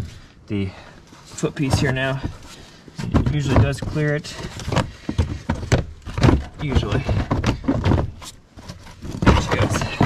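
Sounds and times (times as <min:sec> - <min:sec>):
plastic panel knocking and creaking: 0:01.6 - 0:10.0.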